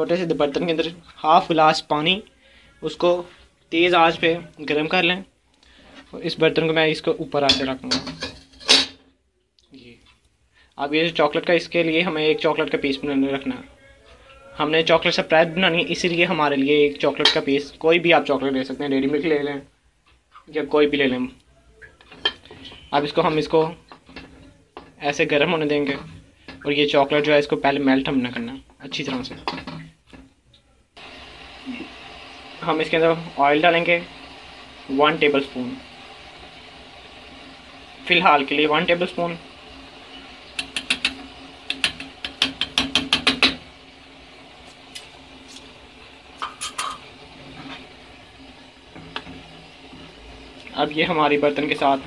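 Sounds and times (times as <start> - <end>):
metal spoon scraping steel bowl: 8.0 - 9.0.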